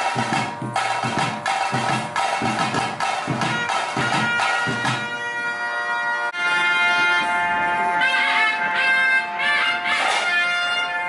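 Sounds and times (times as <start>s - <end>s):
reedy wind instrument melody: 0.0s - 11.0s.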